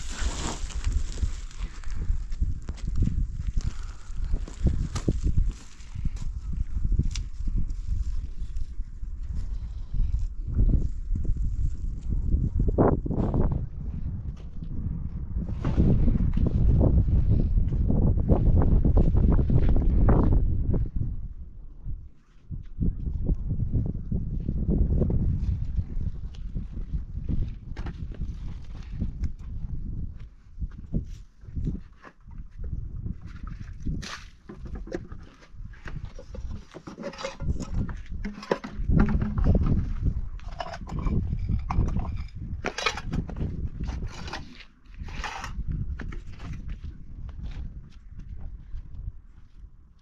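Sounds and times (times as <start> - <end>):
wind buffeting microphone: 0.0 - 50.0
pots being handled: 34.5 - 43.3.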